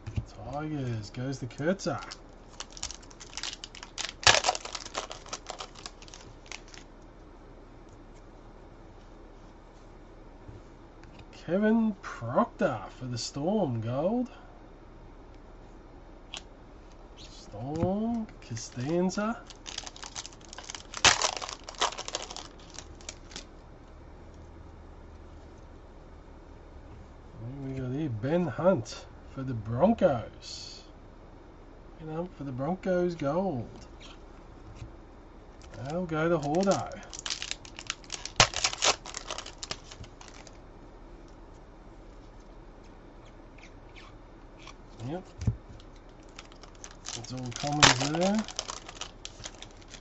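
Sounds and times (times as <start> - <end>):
wrapper tearing and crinkling: 1.9 - 6.9, 18.5 - 23.5, 35.6 - 40.6, 45.8 - 50.0.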